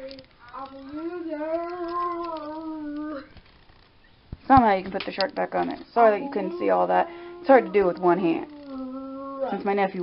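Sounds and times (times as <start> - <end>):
dog whining: 1.0 - 3.4, 6.1 - 9.7.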